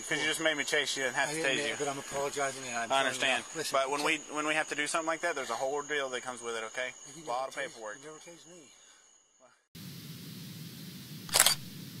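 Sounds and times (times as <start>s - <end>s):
low hum and hiss: 9.8s - 12.0s
camera shutter click: 11.3s - 11.7s.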